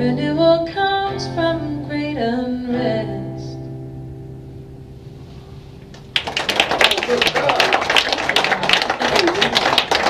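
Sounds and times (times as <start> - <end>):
audience applauding: 5.9 - 10.0.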